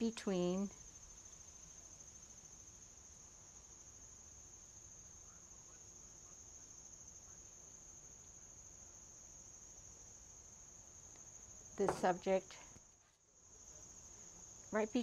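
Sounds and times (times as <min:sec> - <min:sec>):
high-pitched insect chorus trilling: 0:00.0 - 0:15.0.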